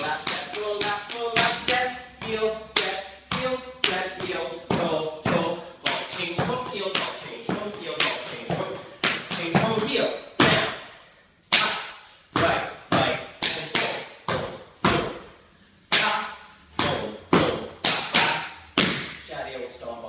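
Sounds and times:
tap dance steps on hardwood: 0:00.2 - 0:10.7.

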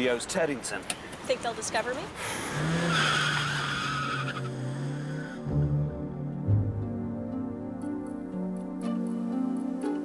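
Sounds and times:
tyres squealing: 0:02.5 - 0:05.4
car engine accelerating: 0:02.5 - 0:06.0
music: 0:04.5 - 0:10.0.

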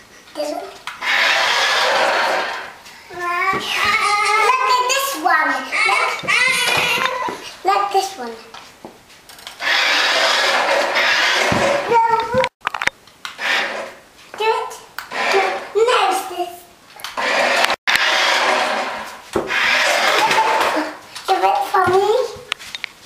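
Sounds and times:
toy car electric motor whirring: 0:00.9 - 0:02.8, 0:09.3 - 0:12.2, 0:13.4 - 0:14.0, 0:15.1 - 0:15.8, 0:17.0 - 0:20.9
children's voices: 0:03.1 - 0:08.6, 0:14.4 - 0:16.6, 0:20.0 - 0:22.4.

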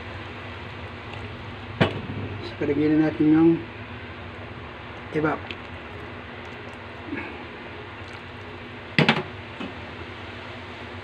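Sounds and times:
chopsticks stirring soup in pot: 0:04.9 - 0:08.8.

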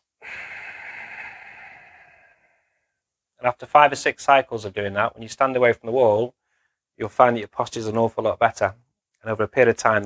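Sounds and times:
breathy nasal exhale: 0:00.0 - 0:03.0.

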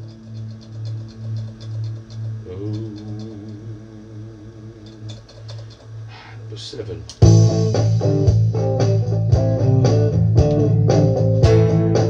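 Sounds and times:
electric guitar pulsing low note: 0:00.0 - 0:12.0.

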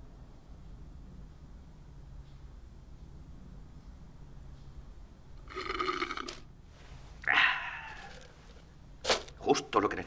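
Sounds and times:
slurping through a straw: 0:05.4 - 0:06.4
loud breathy sound: 0:07.2 - 0:08.3.

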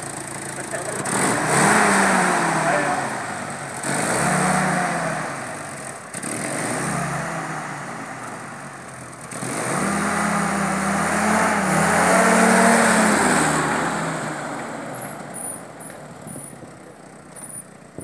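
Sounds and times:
jeep engine revving: 0:00.0 - 0:18.0.

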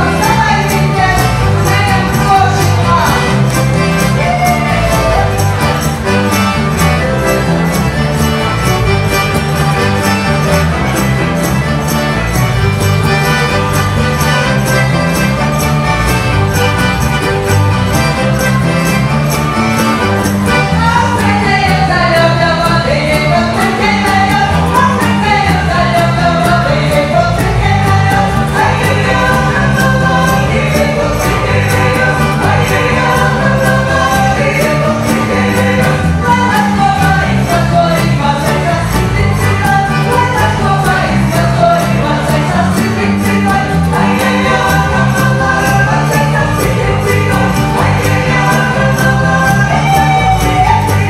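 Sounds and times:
accordion: 0:00.0 - 0:51.0
cajon beat: 0:00.0 - 0:51.0
fiddles playing: 0:00.0 - 0:51.0
voices singing folk song: 0:00.0 - 0:51.0.

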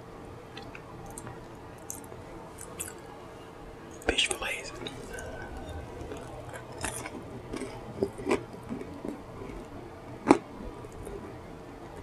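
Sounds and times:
woman whispering: 0:04.0 - 0:05.7.

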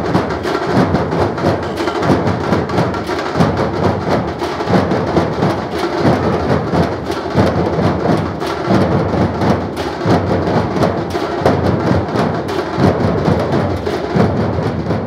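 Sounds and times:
dhol drummers playing: 0:00.0 - 0:15.0.

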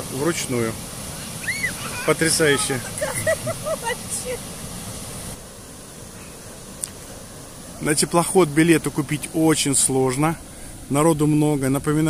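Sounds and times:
water rushing through lock gates: 0:00.0 - 0:12.0
people's voices: 0:01.8 - 0:04.4.

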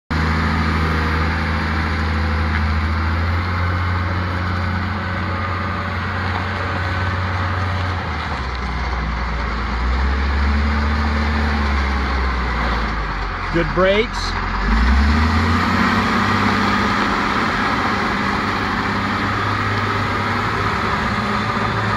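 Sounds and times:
diesel engine running: 0:00.1 - 0:21.9.

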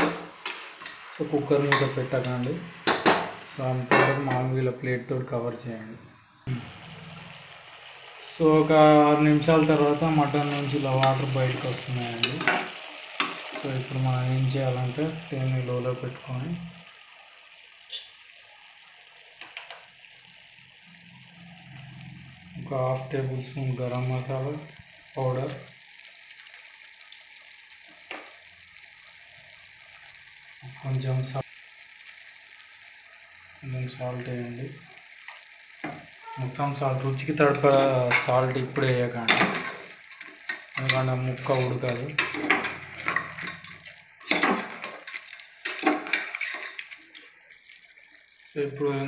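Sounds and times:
meat sizzling in a pot: 0:00.0 - 0:49.0
spoon scraping a pot: 0:39.3 - 0:47.1.

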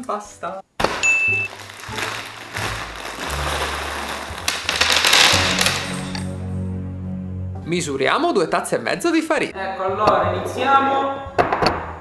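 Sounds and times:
pasta spilling onto table: 0:00.8 - 0:06.2
plastic bag ripping: 0:00.8 - 0:06.3
background music with bass: 0:01.1 - 0:12.0.

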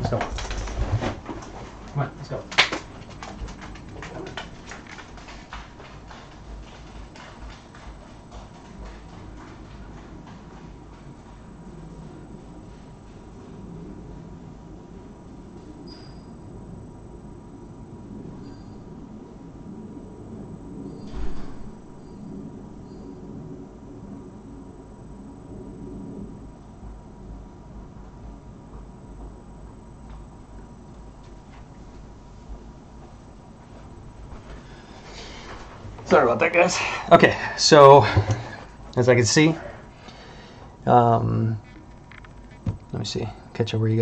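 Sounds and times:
footsteps: 0:00.0 - 0:13.7, 0:31.0 - 0:40.8
steady low hum: 0:00.0 - 0:44.0.

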